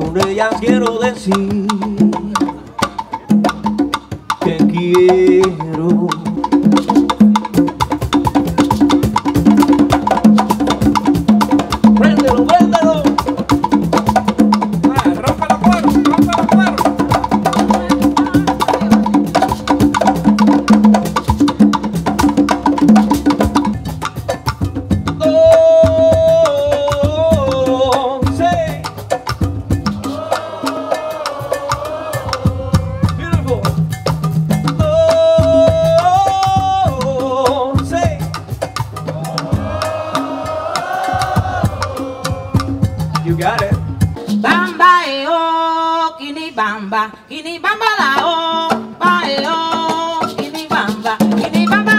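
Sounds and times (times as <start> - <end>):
congas playing fast rhythm: 0.0 - 46.9, 47.6 - 51.9.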